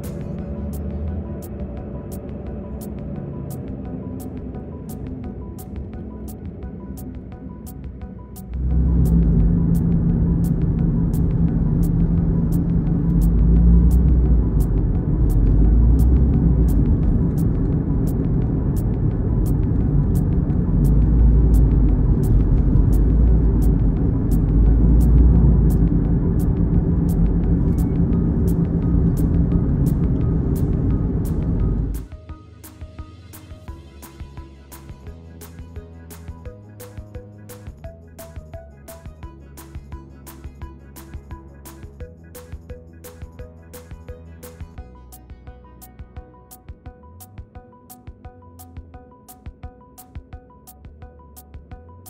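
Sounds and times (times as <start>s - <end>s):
car road and engine rumble: 0.0s - 35.0s
faint music beat: 0.0s - 52.0s.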